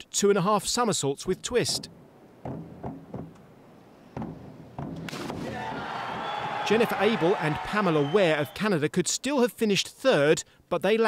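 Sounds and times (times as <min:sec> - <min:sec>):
diving springboards thudding: 0:01.6 - 0:07.2
crowd noise: 0:05.2 - 0:08.7.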